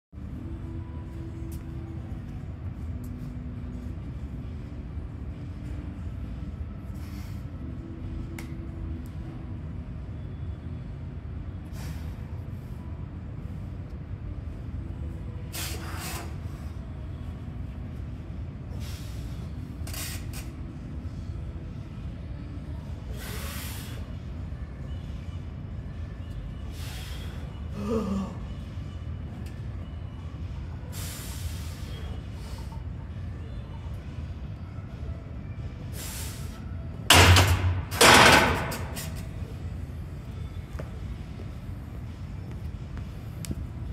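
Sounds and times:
low steady hum: 0:00.1 - 0:43.9
short hissing breaths: 0:11.7 - 0:12.3, 0:15.5 - 0:16.7, 0:18.7 - 0:20.5, 0:23.1 - 0:24.1, 0:26.7 - 0:27.5, 0:30.9 - 0:32.8, 0:35.9 - 0:36.7.

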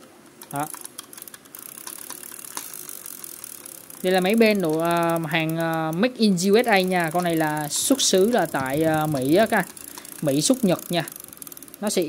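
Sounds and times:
fishing reel clicking: 0:00.3 - 0:12.0.

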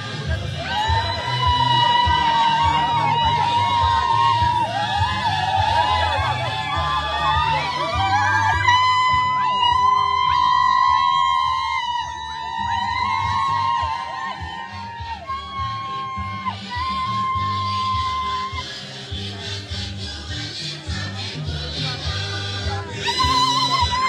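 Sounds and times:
music with bass pulse and melody: 0:00.0 - 0:24.0.

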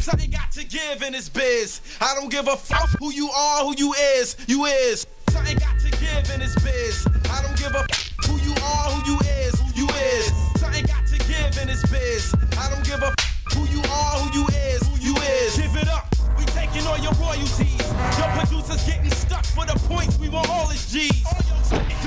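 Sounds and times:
heavy bass beat: 0:00.0 - 0:00.6, 0:05.3 - 0:22.0
person rapping: 0:00.0 - 0:22.0.

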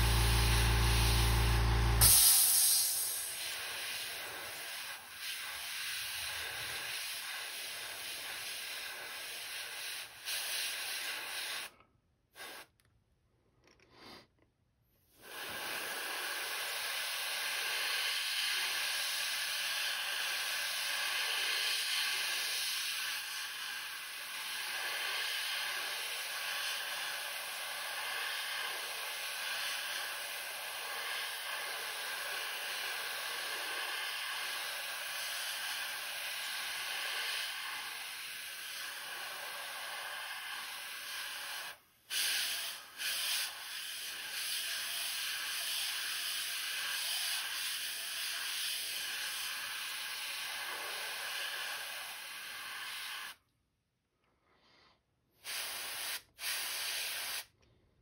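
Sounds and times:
airbrush spraying: 0:00.0 - 0:11.8, 0:12.4 - 0:12.7, 0:15.2 - 0:53.4, 0:55.4 - 0:57.6.

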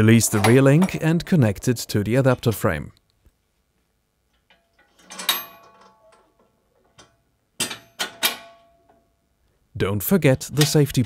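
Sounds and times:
metallic clanks ringing: 0:04.5 - 0:09.1.

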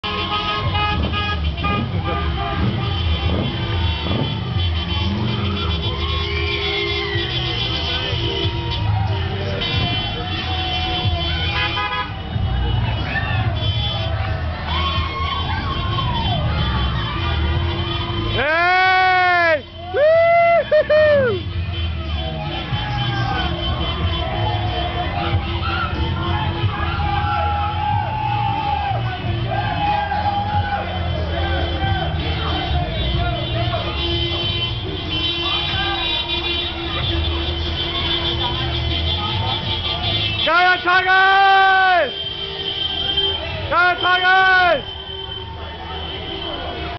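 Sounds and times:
car engines running: 0:00.0 - 0:41.0
crowd shouting and cheering: 0:00.0 - 0:46.9
people's voices: 0:00.0 - 0:46.9
traffic rumble: 0:00.0 - 0:46.9
music: 0:01.8 - 0:18.2, 0:21.5 - 0:33.9.

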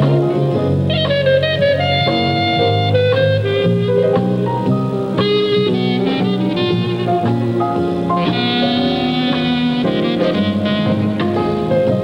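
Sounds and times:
clarinet jazz melody: 0:00.0 - 0:12.0
jazz band with guitar: 0:00.0 - 0:12.0.

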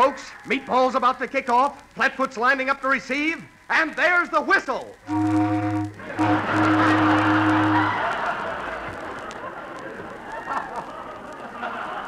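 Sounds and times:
low ship's steam whistle: 0:05.1 - 0:08.0
crowd cheering: 0:05.1 - 0:12.0.

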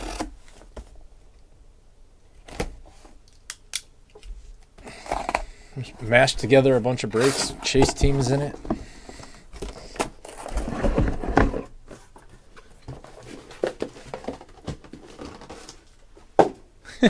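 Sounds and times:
cardboard scraping and rubbing: 0:06.0 - 0:08.6, 0:09.6 - 0:15.9.

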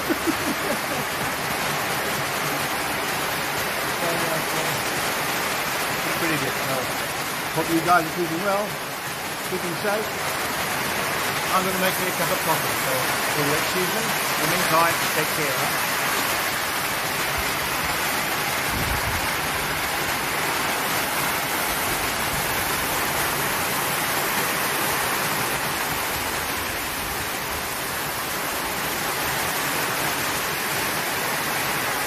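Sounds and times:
heavy rain on a metal roof: 0:00.0 - 0:32.0.

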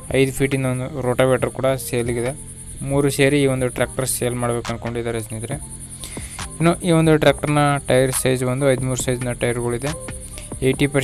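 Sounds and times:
crickets chirring: 0:00.0 - 0:11.0
man talking: 0:00.0 - 0:11.0.

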